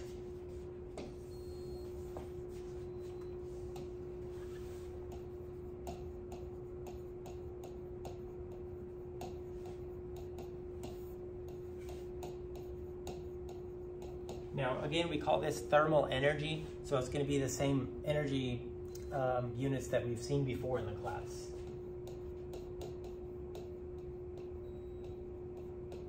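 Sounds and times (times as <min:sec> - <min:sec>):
steady hum: 0:00.0 - 0:26.0.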